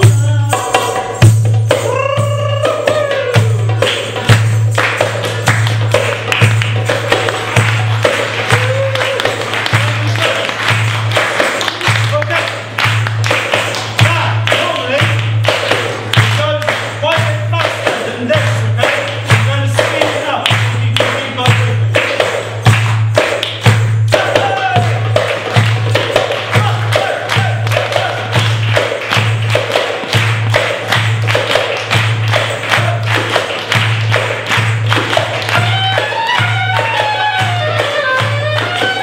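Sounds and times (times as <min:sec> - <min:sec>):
goblet drum rhythm: 0:00.0 - 0:39.0
soprano saxophone melody: 0:35.6 - 0:39.0.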